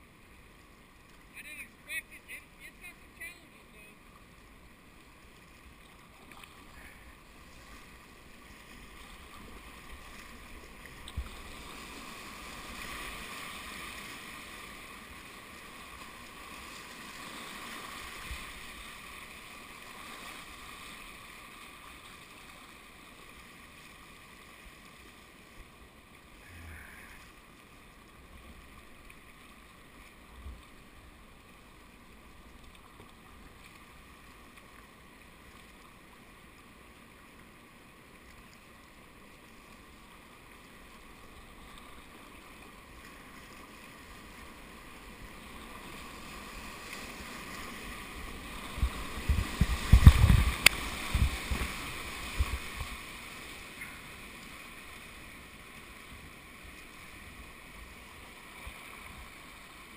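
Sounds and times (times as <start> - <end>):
river water rushing: 0.0 - 38.1, 38.8 - 59.9
water splashing on camera: 45.4 - 55.1.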